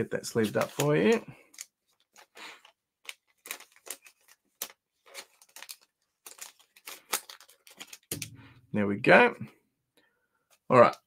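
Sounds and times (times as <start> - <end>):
plastic sleeve crinkling: 0.3 - 8.6.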